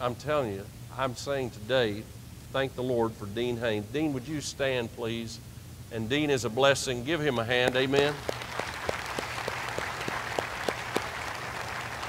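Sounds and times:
close hand claps: 0:07.6 - 0:12.0
crowd applauding: 0:07.6 - 0:12.0.

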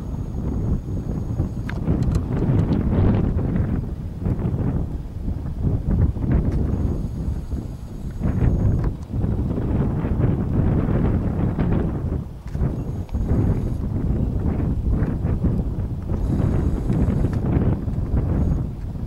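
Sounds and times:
wind blowing across microphone: 0:00.0 - 0:19.0.

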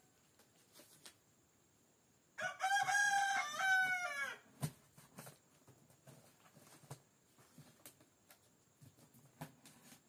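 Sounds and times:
rooster crowing: 0:02.4 - 0:04.5.

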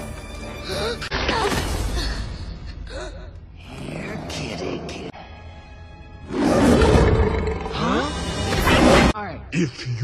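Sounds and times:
film music: 0:00.0 - 0:10.0
lion roaring: 0:06.3 - 0:08.1.

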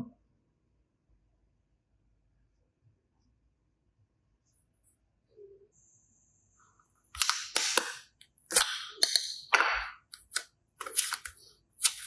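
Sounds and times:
plastic capsule snapping open: 0:07.2 - 0:12.0
slime squelching: 0:07.2 - 0:12.0.

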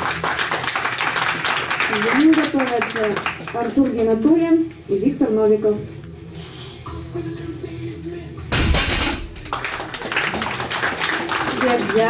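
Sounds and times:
applause: 0:00.0 - 0:04.2, 0:09.4 - 0:12.0
barbell crashing on platform: 0:08.5 - 0:09.4.

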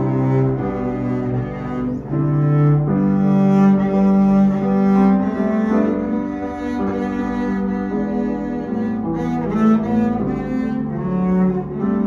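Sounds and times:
bowed double bass: 0:00.0 - 0:12.0
piano accompaniment: 0:00.0 - 0:12.0.

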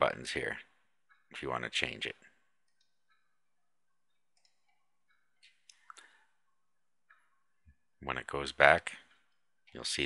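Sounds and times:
mouse click: 0:04.3 - 0:06.2.

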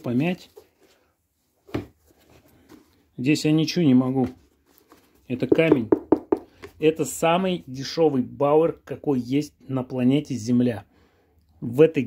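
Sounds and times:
dull knock: 0:05.5 - 0:06.5.

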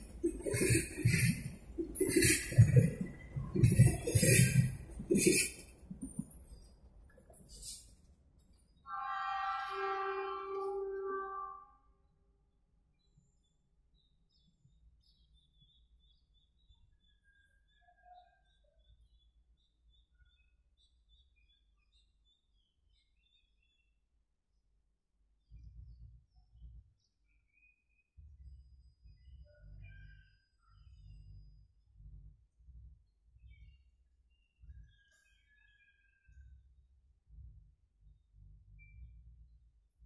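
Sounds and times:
small birds chirping: 0:00.0 - 0:07.9, 0:13.0 - 0:24.0
loud steady pitched tone: 0:08.9 - 0:11.7.

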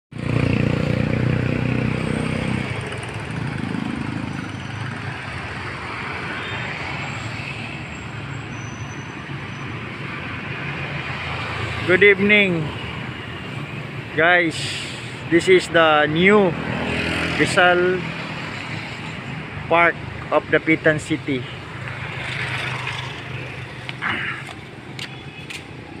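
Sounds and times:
steady hum of traffic: 0:00.1 - 0:26.0
vehicle engine passing: 0:00.2 - 0:07.8.

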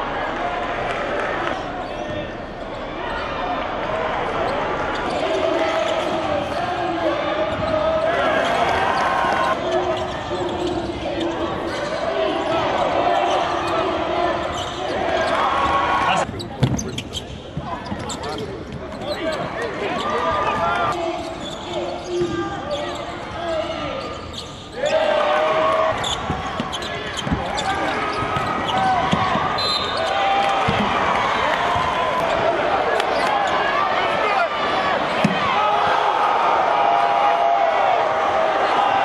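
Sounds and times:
basketball bouncing on court: 0:26.1 - 0:29.5, 0:30.6 - 0:30.9.

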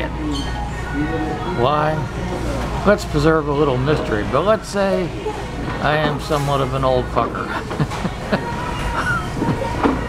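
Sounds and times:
man laughing: 0:07.4 - 0:09.6.

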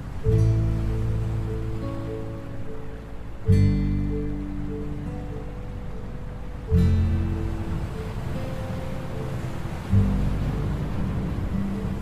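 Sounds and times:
gentle acoustic guitar music: 0:00.0 - 0:12.0
ocean waves: 0:00.0 - 0:12.0.

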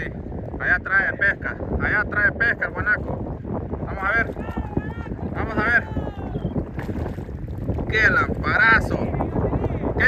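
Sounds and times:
choppy sea water: 0:00.0 - 0:10.0
wind rumbling on microphone: 0:00.0 - 0:10.0.

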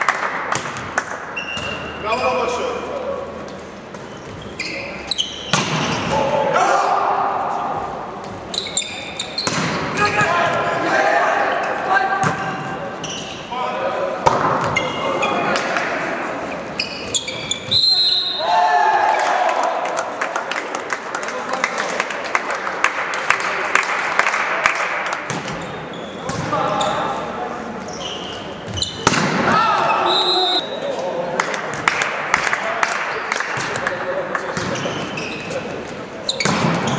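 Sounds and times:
volleyball struck with smacks: 0:00.0 - 0:01.8, 0:09.4 - 0:10.3, 0:29.0 - 0:29.5
sneakers squeaking on court: 0:01.4 - 0:02.3, 0:03.9 - 0:06.1, 0:08.2 - 0:09.8, 0:12.2 - 0:13.5, 0:14.6 - 0:15.5, 0:16.5 - 0:18.0, 0:25.3 - 0:27.1, 0:27.8 - 0:29.1, 0:34.6 - 0:36.9
crowd voices: 0:01.7 - 0:36.9
players shouting: 0:09.9 - 0:12.2, 0:29.0 - 0:30.8.

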